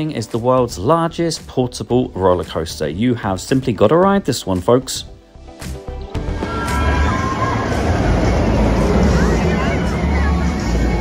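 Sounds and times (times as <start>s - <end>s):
music: 0.0s - 11.0s
roller coaster train rumbling on track: 6.4s - 11.0s.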